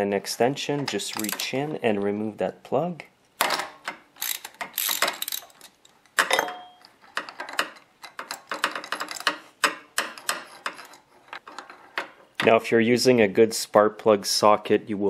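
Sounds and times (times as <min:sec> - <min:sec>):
ratchet wrench clicking: 0:04.2 - 0:05.7.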